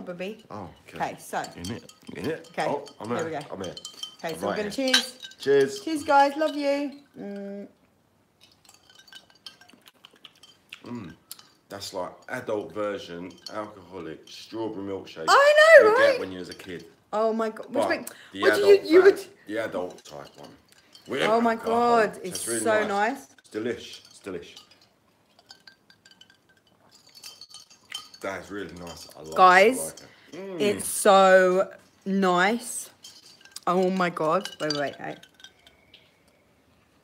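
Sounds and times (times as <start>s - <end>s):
drinking glasses clinking: 0.0s - 7.5s, 8.4s - 36.5s.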